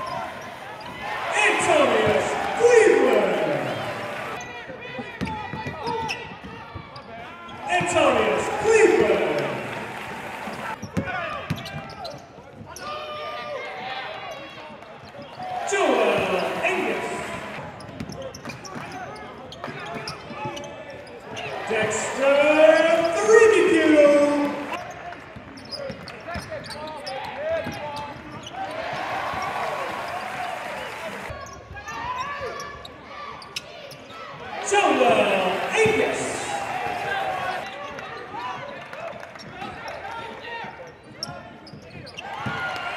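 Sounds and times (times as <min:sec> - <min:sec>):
arena background noise: 0:00.0 - 0:04.4, 0:07.2 - 0:10.8, 0:15.4 - 0:17.8, 0:21.2 - 0:24.8, 0:32.4 - 0:37.7
players' voices: 0:00.0 - 0:11.4, 0:15.4 - 0:25.0, 0:34.4 - 0:38.6
sneaker squeaks: 0:05.2 - 0:07.9, 0:10.8 - 0:12.9, 0:25.6 - 0:28.7, 0:40.9 - 0:42.6.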